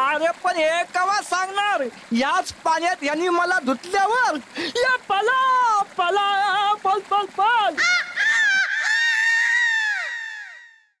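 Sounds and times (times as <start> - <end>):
cartoon character's high-pitched cry: 7.8 - 10.8.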